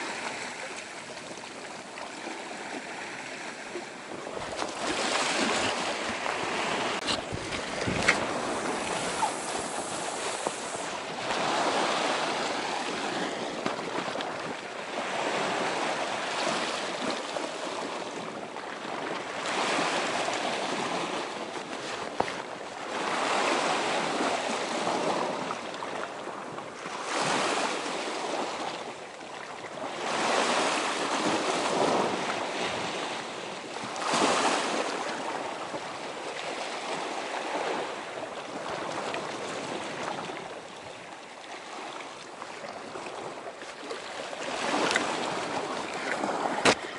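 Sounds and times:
sea waves washing against rocks: 0:00.0 - 0:29.0, 0:29.8 - 0:46.9.

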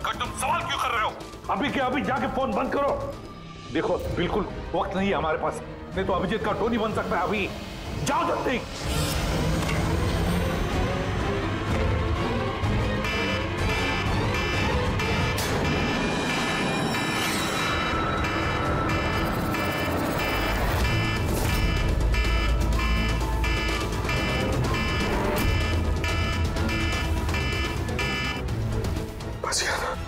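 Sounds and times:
dramatic background music: 0:00.0 - 0:30.0
phone reminder tone beeping: 0:18.2 - 0:28.4.

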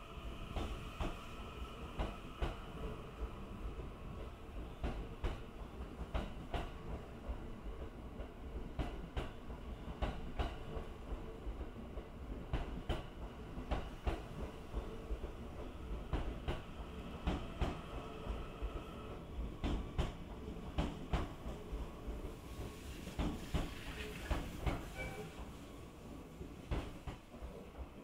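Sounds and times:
train rumble: 0:00.0 - 0:28.0.

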